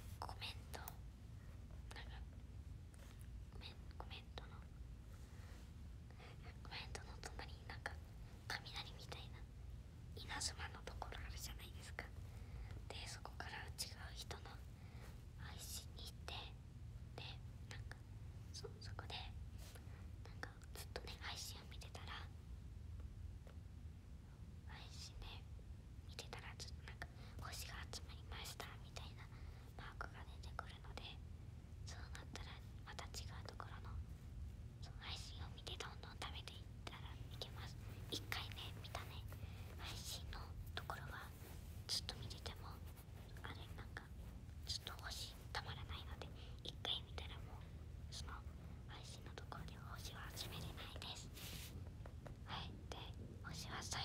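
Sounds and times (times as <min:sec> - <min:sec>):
soft whispering: 0:00.0 - 0:22.6, 0:23.4 - 0:54.0
low steady hum: 0:00.0 - 0:54.0.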